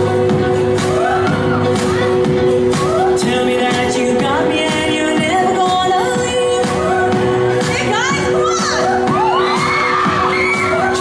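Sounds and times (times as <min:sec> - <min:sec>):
crowd shouting and cheering: 0:00.0 - 0:11.0
pop music with singing: 0:00.0 - 0:11.0.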